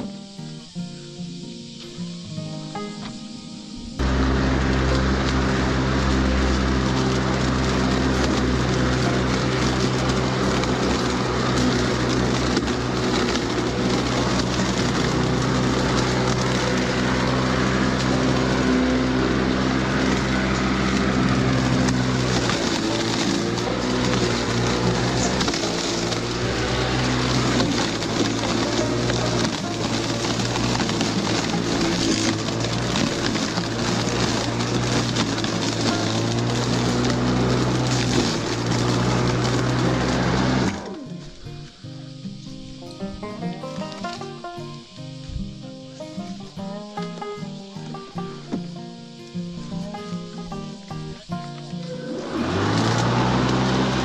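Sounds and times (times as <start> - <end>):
electric lawn mower cutting grass: 0.0 - 54.0.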